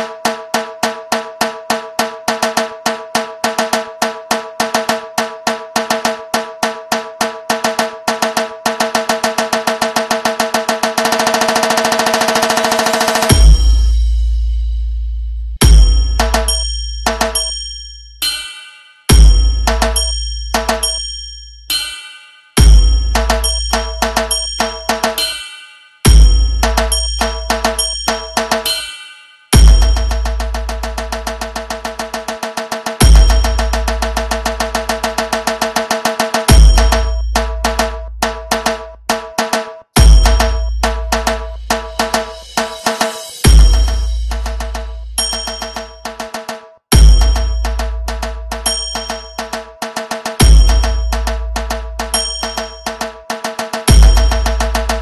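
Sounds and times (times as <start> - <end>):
electronic dance music: 0.0 - 14.0, 21.7 - 55.0
deep held bass: 13.3 - 16.7, 40.0 - 42.5, 43.5 - 45.3, 53.9 - 55.0
drum strokes into a roll: 29.6 - 55.0.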